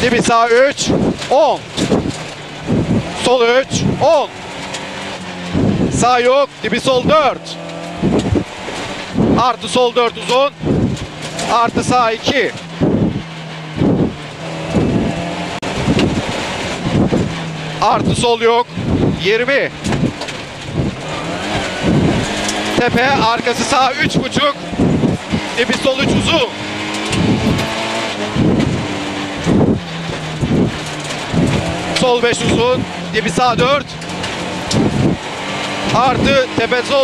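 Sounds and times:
car engine running hard: 0.0 - 37.0
tyres on gravel: 0.0 - 37.0.

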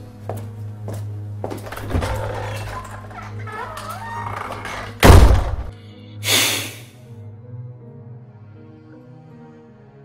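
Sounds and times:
tense background music: 0.0 - 6.2, 6.9 - 10.0
door slamming shut: 4.3 - 5.7.

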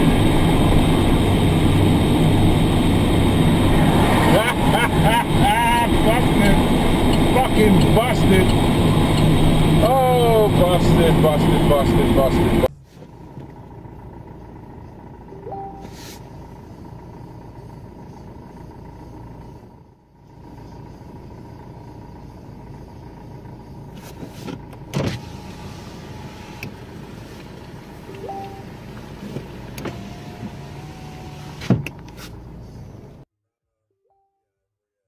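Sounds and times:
car engine and road rumble: 0.0 - 33.3.

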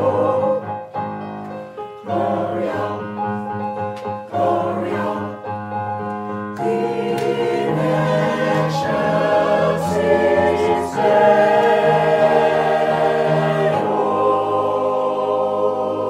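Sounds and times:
choir singing held chords: 0.0 - 1.2, 2.0 - 3.5, 4.2 - 5.7, 6.6 - 16.0.

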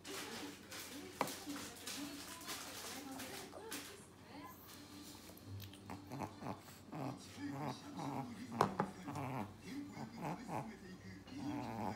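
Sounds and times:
small dog vocalizing: 5.6 - 10.7, 11.3 - 11.9.

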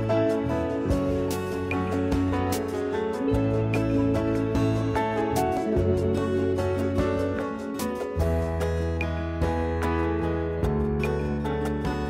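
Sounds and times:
plucked guitar notes: 0.0 - 12.0.

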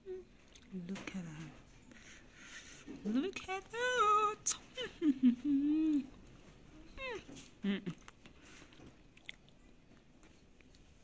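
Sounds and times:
woman humming while eating: 0.0 - 0.3, 3.8 - 6.2, 6.9 - 8.2.

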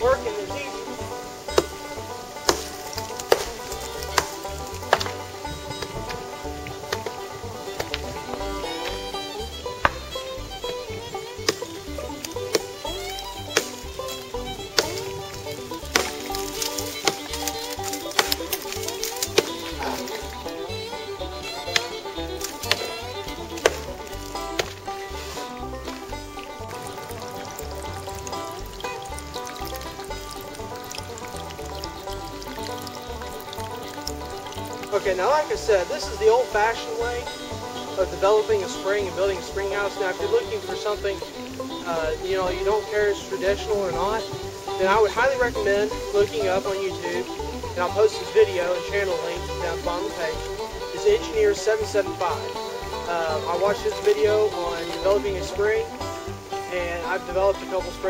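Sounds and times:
instrumental background music: 0.0 - 58.0
pick striking rock: 0.0 - 58.0.

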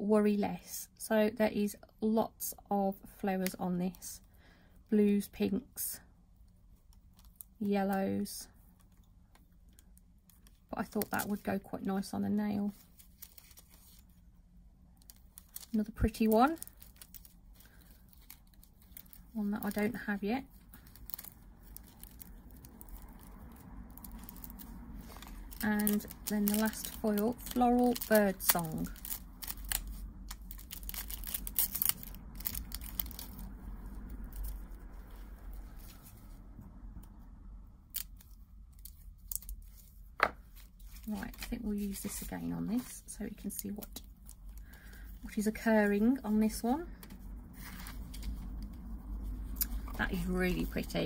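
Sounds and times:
faint low hum: 0.0 - 51.0
plastic and card packaging rustling: 6.8 - 14.3, 14.9 - 36.6, 37.8 - 51.0.

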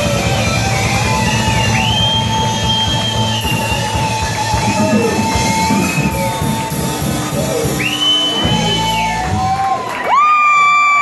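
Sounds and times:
electric guitar sliding notes: 0.0 - 9.6.

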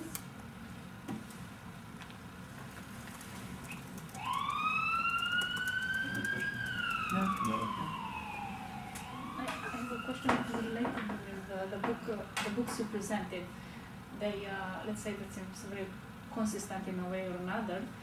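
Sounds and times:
emergency siren wailing: 4.1 - 12.2.

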